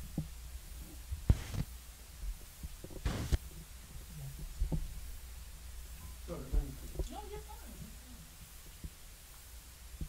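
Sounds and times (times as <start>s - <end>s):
soft low thuds: 0.0s - 9.1s.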